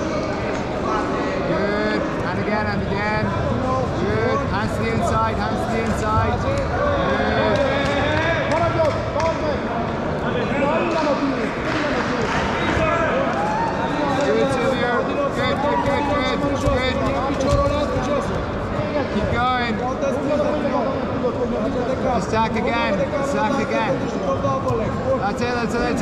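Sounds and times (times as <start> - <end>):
people talking and shouting: 0.0 - 26.0.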